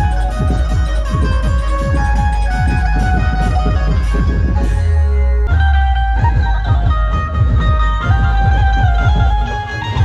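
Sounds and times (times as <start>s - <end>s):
drum strokes: 0.0s - 4.9s, 5.6s - 10.0s
sustained melody line: 0.0s - 10.0s.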